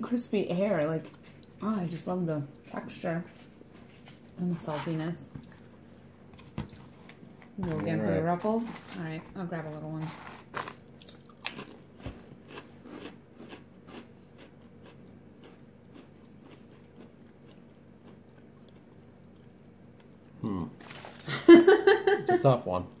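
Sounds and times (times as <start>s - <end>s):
chips crunching: 8.0s - 14.5s, 20.8s - 21.3s
people laughing: 21.2s - 22.4s.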